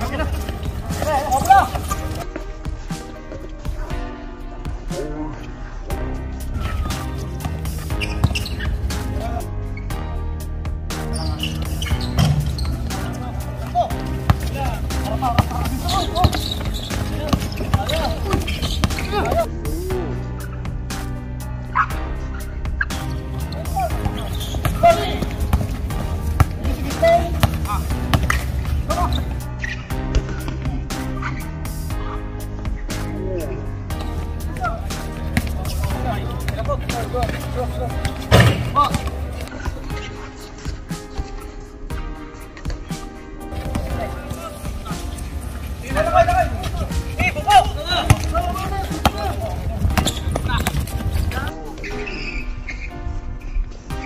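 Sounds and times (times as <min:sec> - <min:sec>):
background music: 0:00.0 - 0:54.0
sneakers squeaking on court: 0:00.1 - 0:02.4, 0:06.6 - 0:08.9, 0:11.1 - 0:19.5, 0:22.8 - 0:30.6, 0:35.3 - 0:41.3, 0:43.5 - 0:53.7
players shouting: 0:12.7 - 0:19.5, 0:23.4 - 0:29.4, 0:43.7 - 0:51.5
basketball bouncing: 0:14.2 - 0:19.4, 0:24.0 - 0:28.5, 0:35.3 - 0:39.3, 0:46.6 - 0:51.4
basketball bouncing on hard court: 0:15.4 - 0:19.4, 0:48.0 - 0:51.4.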